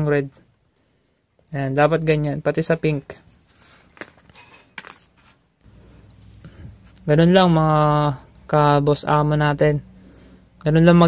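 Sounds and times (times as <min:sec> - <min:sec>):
handling sounds: 0:03.0 - 0:07.1.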